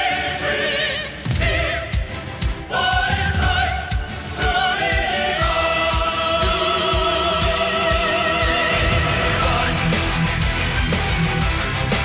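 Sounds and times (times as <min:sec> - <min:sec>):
choir-like voices with vibrato: 0:00.0 - 0:10.6
heavy drums: 0:00.0 - 0:12.0
metal band playing live: 0:05.4 - 0:12.0.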